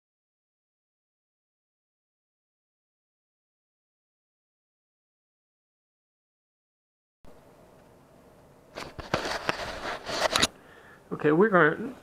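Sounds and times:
rustling: 8.7s - 10.5s.

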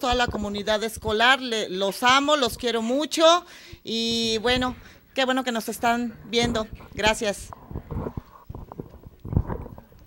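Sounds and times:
microphone handling thumps: 4.0s - 5.0s, 6.3s - 10.0s.

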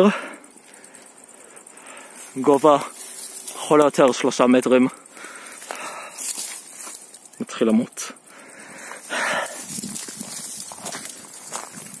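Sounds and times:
footsteps on dirt trail: 0.5s - 7.4s, 8.2s - 12.0s
dry brush rustling: 2.1s - 4.6s, 5.3s - 7.3s, 8.8s - 12.0s.

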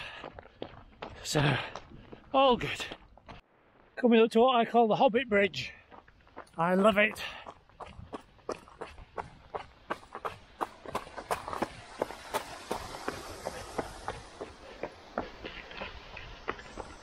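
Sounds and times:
running footsteps on stone: 0.0s - 3.9s, 5.7s - 17.0s
running footsteps on gravel: 0.0s - 4.0s, 5.6s - 17.0s.

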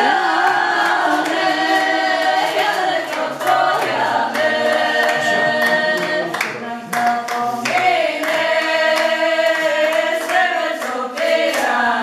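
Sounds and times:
women singing folk song unaccompanied: 0.0s - 6.4s, 7.1s - 12.0s.

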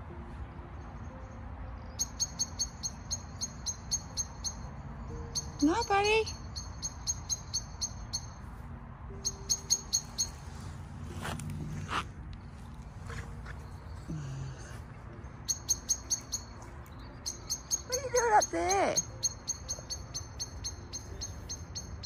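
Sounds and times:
blackbird chink calls: 15.4s - 22.0s.

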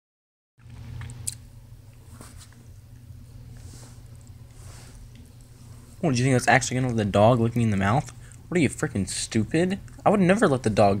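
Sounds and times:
soft breathy rustles: 2.0s - 6.2s.

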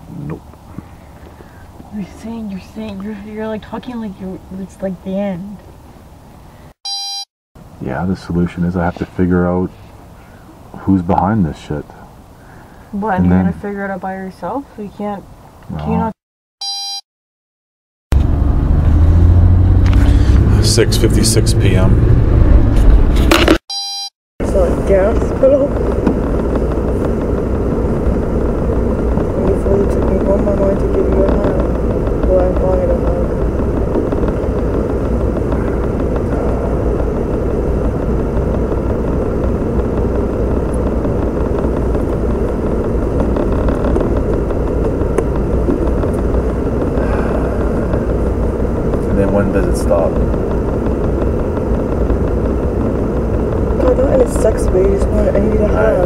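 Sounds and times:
road and engine noise in car: 0.0s - 17.0s, 18.1s - 56.0s.

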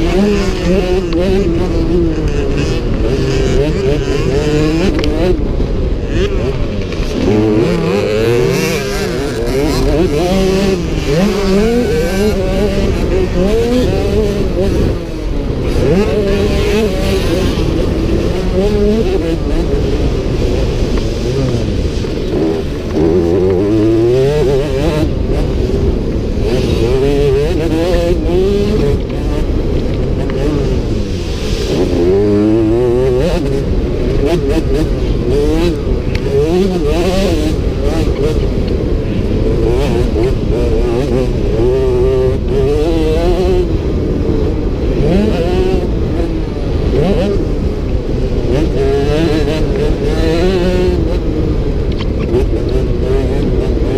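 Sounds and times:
motocross bike engine revving: 0.0s - 53.9s.

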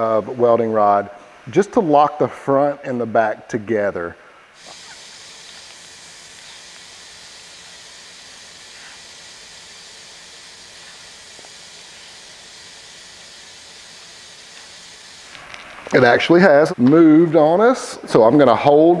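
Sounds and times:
air stream hissing: 4.1s - 18.2s.

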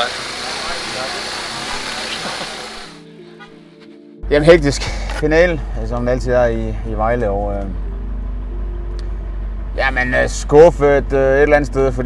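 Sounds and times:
steady outdoor rushing noise: 0.0s - 3.1s.

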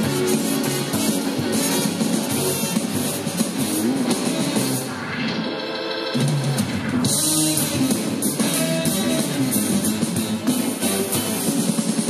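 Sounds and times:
horn section: 0.0s - 4.9s, 7.1s - 11.5s
drums: 0.0s - 12.0s
electric guitar: 0.0s - 12.0s.

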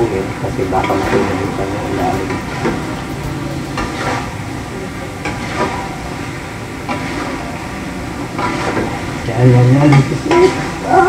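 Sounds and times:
steady sizzle: 0.0s - 11.0s
metal spatula scraping a pan: 0.8s - 4.4s, 5.2s - 6.0s, 8.3s - 10.9s.

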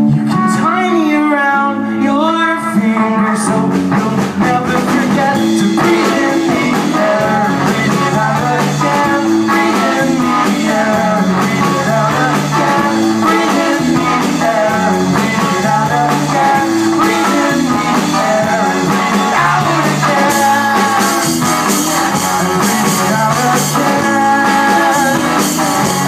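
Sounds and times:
electric guitars: 0.0s - 26.0s
people singing into microphones: 0.0s - 26.0s
drum kit: 3.4s - 26.0s.

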